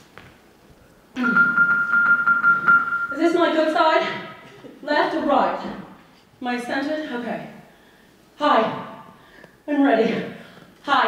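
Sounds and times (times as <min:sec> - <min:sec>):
live keyboard music: 0:01.2 - 0:03.2.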